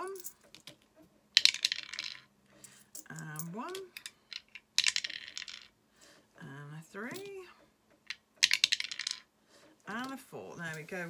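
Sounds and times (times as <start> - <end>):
coins clinking in hands: 0.0 - 0.8.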